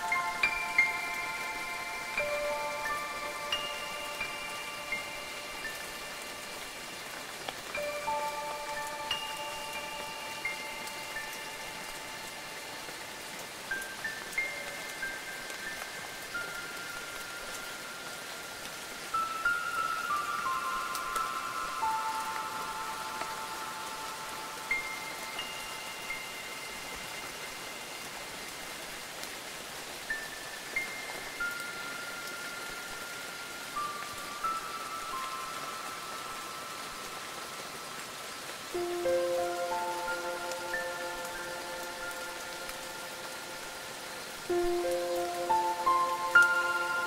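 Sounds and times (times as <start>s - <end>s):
ambient music notes: 0.0s - 47.0s
steady rain falling: 0.0s - 47.0s.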